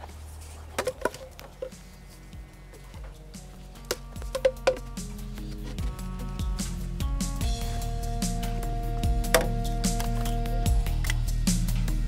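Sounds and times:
background music: 0.0s - 12.0s
plastic pipe fittings knocking: 0.8s - 1.8s, 3.8s - 5.8s, 9.3s - 9.6s.

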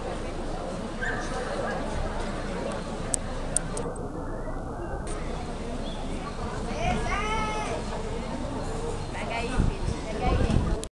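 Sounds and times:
background noise: 0.0s - 10.9s.

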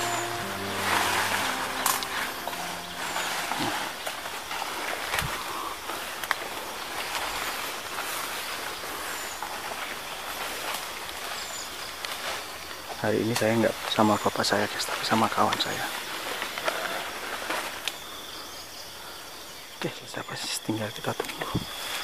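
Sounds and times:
background music with sustained notes: 0.0s - 4.4s
rustling leaves and brushing branches: 6.4s - 17.9s.

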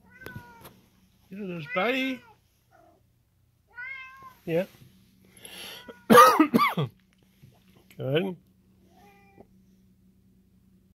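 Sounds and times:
cat meowing: 0.0s - 0.8s, 3.7s - 4.4s, 8.9s - 9.5s.

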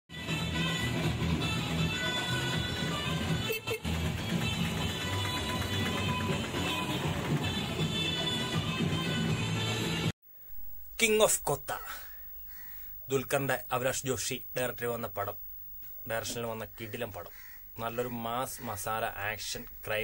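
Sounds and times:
music with steady bass line: 0.1s - 10.1s.

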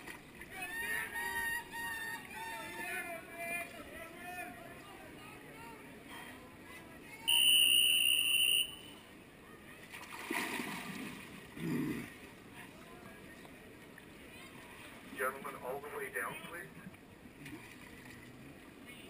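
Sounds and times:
water lapping at pool wall: 0.0s - 1.4s, 9.7s - 19.0s
high-pitched signal tone: 7.3s - 9.0s.

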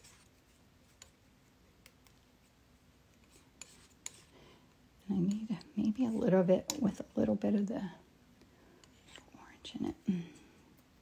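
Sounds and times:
woman whispering: 9.1s - 10.5s.

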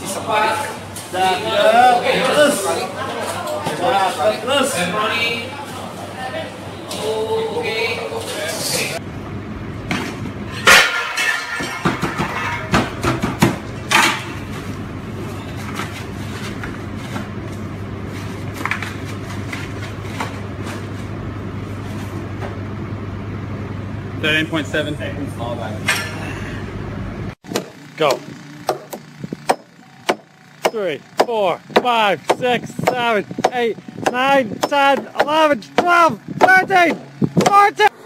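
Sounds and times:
kitchen equipment hum: 8.6s - 38.0s
pans and boxes clattering: 10.6s - 14.4s.

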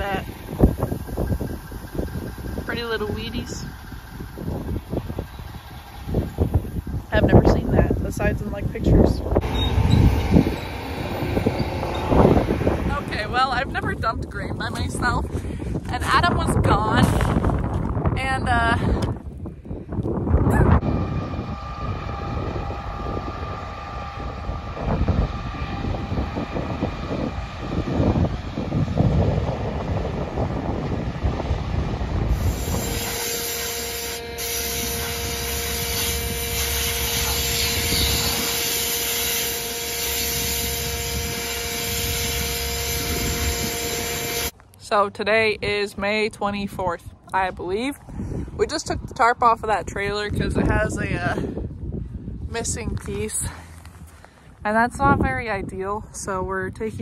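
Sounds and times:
faint machine whine: 0.0s - 15.1s, 20.6s - 44.6s
combine harvester drone: 0.0s - 15.4s, 20.4s - 45.0s
wind gusting on microphone: 0.0s - 57.0s.

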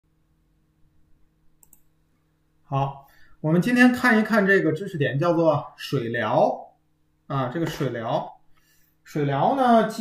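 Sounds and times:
faint steady hum: 0.1s - 10.0s
computer mouse clicks: 1.6s - 1.9s.

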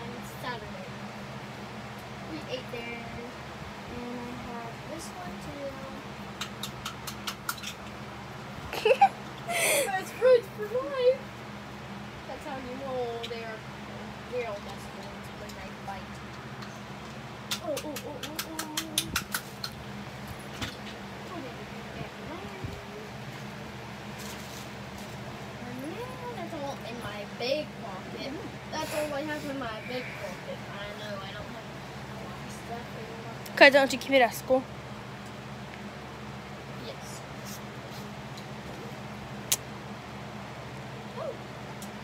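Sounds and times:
faint humming voice: 0.0s - 42.0s
low steady hum: 0.0s - 42.0s.

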